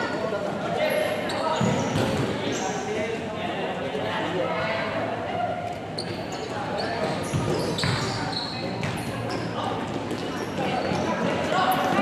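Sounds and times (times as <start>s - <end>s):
voices of players and onlookers: 0.0s - 12.0s
shoes squeaking: 6.0s - 12.0s.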